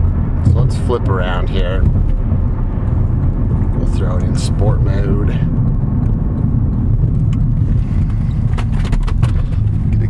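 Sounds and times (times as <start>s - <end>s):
car driving heard from cabin: 0.0s - 10.0s.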